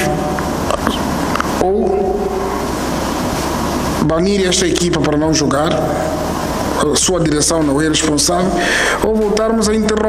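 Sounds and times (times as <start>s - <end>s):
steady background hiss: 0.0s - 10.0s.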